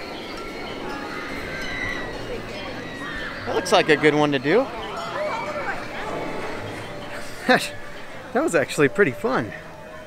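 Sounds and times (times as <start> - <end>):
distant riders screaming: 0.0 - 6.6
amusement park background noise: 0.0 - 10.0.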